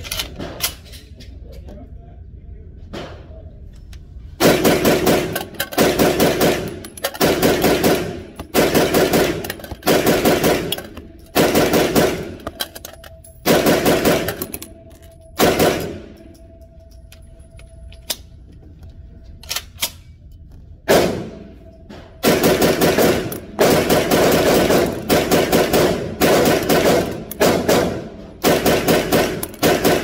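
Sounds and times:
rifle firing rapid shots: 4.4 - 12.7, 13.4 - 14.7, 15.4 - 16.2, 20.9 - 21.5, 22.2 - 30.0.

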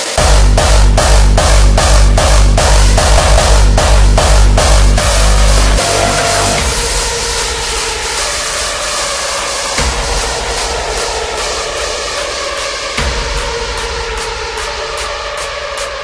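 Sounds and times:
sustained synth chord: 0.2 - 7.9.

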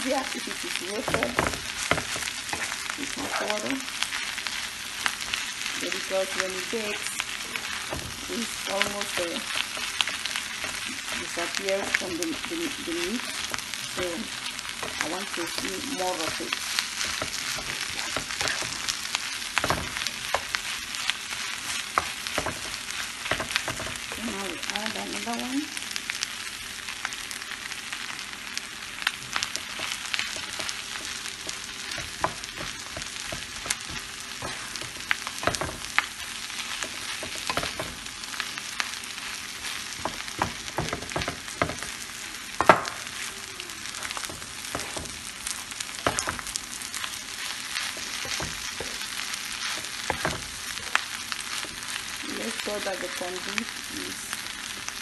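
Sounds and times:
food sizzling in a frying pan: 0.0 - 55.0
wooden spatula scraping pan: 5.8 - 18.9, 29.5 - 38.1
spatula tapping pan: 21.7 - 24.2, 29.4 - 36.1, 39.9 - 42.0.

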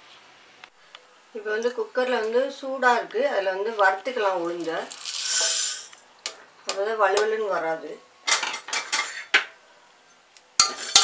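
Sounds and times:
dry grains rattling in steel pot: 4.5 - 6.0.

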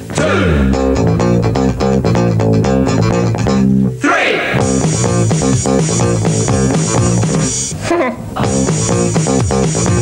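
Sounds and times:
electric bass guitar line: 0.0 - 4.0, 4.6 - 10.0
quick percussive beat: 4.6 - 7.7, 8.4 - 10.0.

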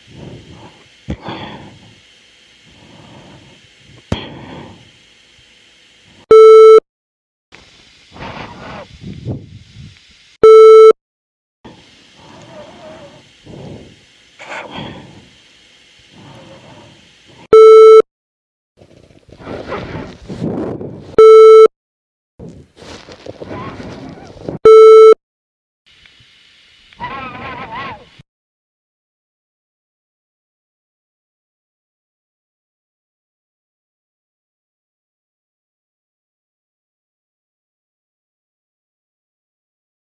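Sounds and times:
recording hiss: 0.0 - 6.3, 7.6 - 10.4, 11.7 - 17.5, 25.9 - 28.2.

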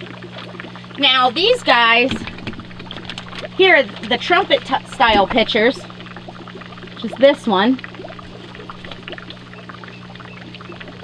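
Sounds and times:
low even hum: 0.0 - 11.0
running water: 0.0 - 11.0.

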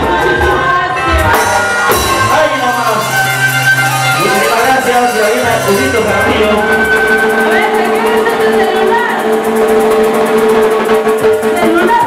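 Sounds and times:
folk band music with held note: 0.0 - 12.0.

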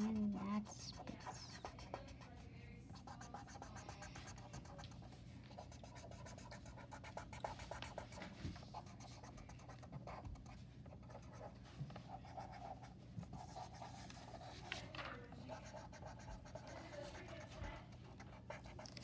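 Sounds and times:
marker scribbling on paper: 0.0 - 14.8, 15.4 - 19.0.

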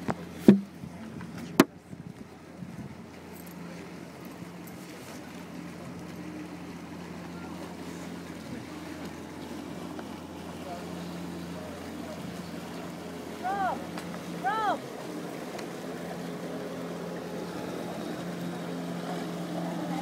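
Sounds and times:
outboard engine running: 0.0 - 20.0
water wash: 0.0 - 20.0.

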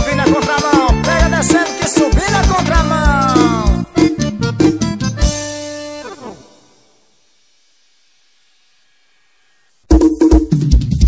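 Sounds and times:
faint steady hiss: 5.4 - 9.9.

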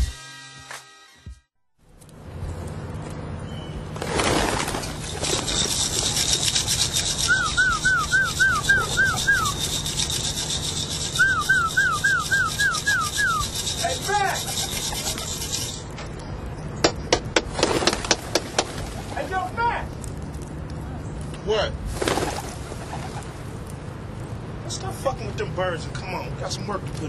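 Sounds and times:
pigeon wings fluttering: 4.0 - 13.8, 17.5 - 19.5, 21.9 - 23.5
quick repeated chirping: 5.1 - 15.8.

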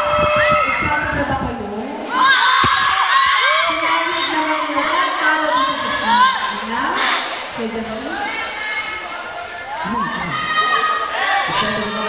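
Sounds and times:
audience cheering and shouting: 0.0 - 1.3, 2.0 - 12.0.

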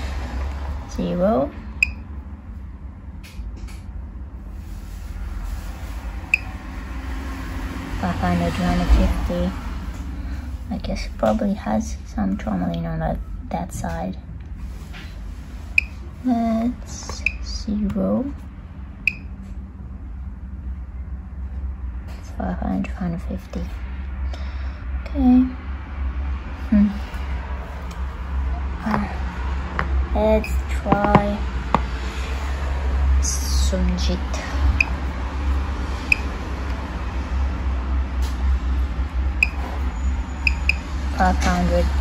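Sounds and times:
low steady background rumble: 0.0 - 42.0
steady low hum: 0.0 - 42.0
high electronic beep: 6.3 - 6.5, 17.2 - 17.4, 19.1 - 19.3, 39.4 - 39.6, 40.4 - 40.8.

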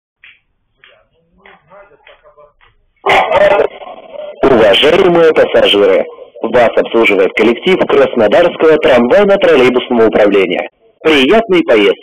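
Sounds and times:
loudspeaker passenger announcement: 0.9 - 12.0
faint dog barks: 3.0 - 3.8.

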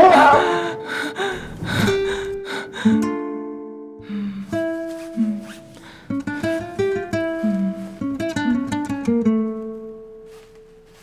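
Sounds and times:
person gasping: 0.0 - 3.1, 4.0 - 6.7
soft music with held notes: 2.1 - 11.0.

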